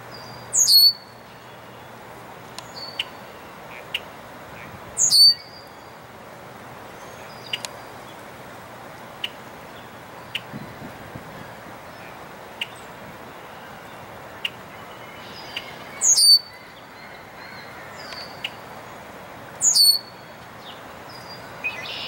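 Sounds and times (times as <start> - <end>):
bird whistling: 0.6 - 1.0, 5.0 - 5.4, 16.0 - 16.6, 19.6 - 20.1.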